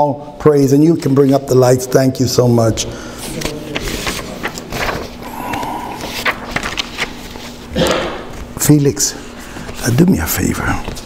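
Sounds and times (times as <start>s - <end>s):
paper rustling and crinkling: 3.2s - 7.7s.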